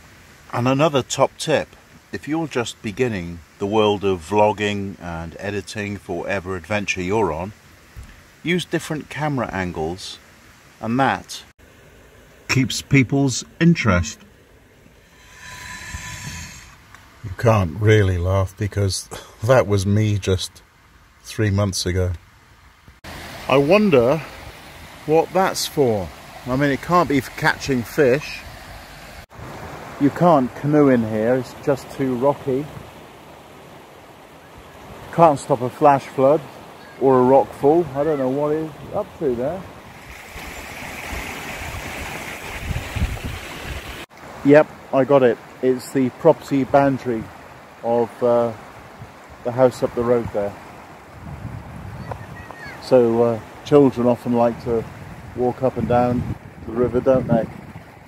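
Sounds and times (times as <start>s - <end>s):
mountain stream rushing: 0.0s - 18.2s, 19.3s - 56.9s
wind rumbling on microphone: 39.6s - 44.0s, 48.7s - 52.8s, 54.5s - 58.0s.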